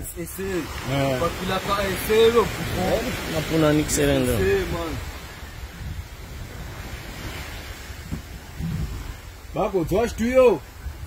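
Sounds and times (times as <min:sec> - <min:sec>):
small waves on sandy shore: 0:00.0 - 0:11.0
wind rumbling on microphone: 0:00.0 - 0:11.0.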